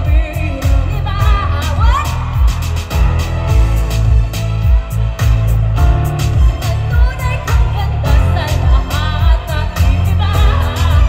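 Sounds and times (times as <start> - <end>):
woman singing into microphone: 0.0 - 2.4, 6.6 - 11.0
band bass and drums: 0.0 - 11.0.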